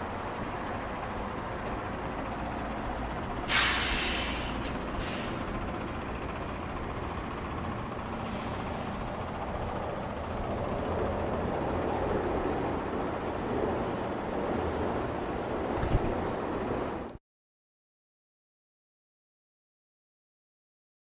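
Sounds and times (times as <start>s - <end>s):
city road traffic: 0.0s - 17.2s.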